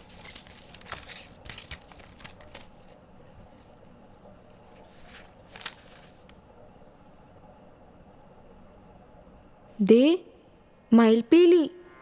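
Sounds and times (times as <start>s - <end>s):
book pages rustling: 0.0s - 6.4s.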